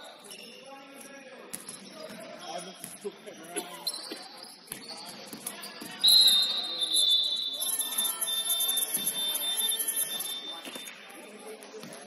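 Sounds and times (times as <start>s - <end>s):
faint voices in a hall: 0.0s - 12.0s.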